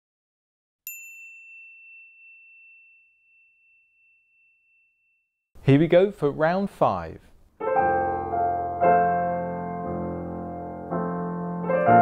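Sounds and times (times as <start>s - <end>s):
bright bell-like ding: 0.9s - 5.2s.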